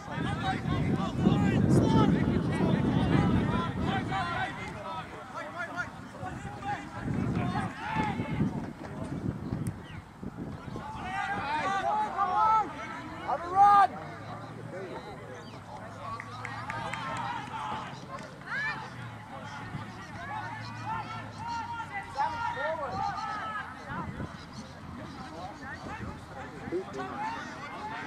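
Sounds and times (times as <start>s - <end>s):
loud shout: 0.0s - 8.4s, 10.6s - 14.0s, 16.4s - 24.1s
people shouting and calling: 0.0s - 9.1s, 10.4s - 28.0s.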